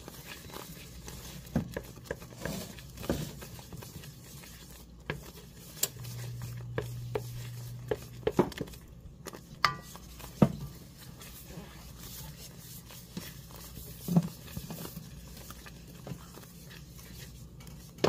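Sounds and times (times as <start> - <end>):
low steady hum: 0.0 - 18.0
wooden spoon scraping pan: 0.0 - 18.0.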